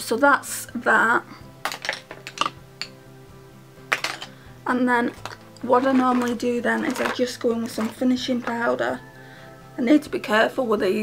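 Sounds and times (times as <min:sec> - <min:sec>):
soft background music: 0:00.0 - 0:11.0
makeup containers clicking: 0:01.6 - 0:03.0, 0:03.9 - 0:04.4, 0:05.1 - 0:08.8.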